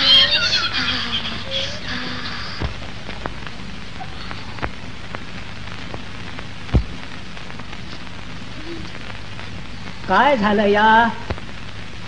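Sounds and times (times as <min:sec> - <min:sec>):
faint low hum: 0:00.0 - 0:12.0
film soundtrack hiss: 0:00.0 - 0:12.0
crackling clicks: 0:02.6 - 0:12.0
loud pop: 0:06.6 - 0:07.2.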